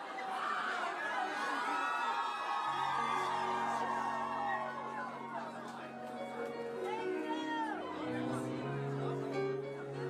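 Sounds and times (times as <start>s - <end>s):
crowd whooping: 0.0s - 8.1s.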